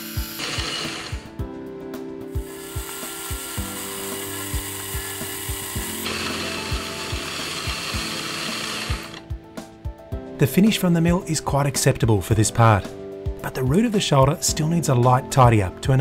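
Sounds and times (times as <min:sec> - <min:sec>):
milling machine cutting hiss: 0:00.0 - 0:01.4, 0:02.3 - 0:09.2.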